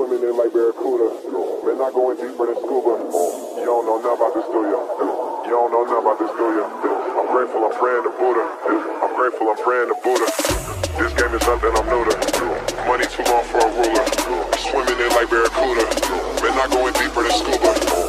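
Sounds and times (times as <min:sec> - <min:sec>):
filtered voice in electronic music: 0:00.0 - 0:18.0
burst of hiss: 0:03.0 - 0:04.2.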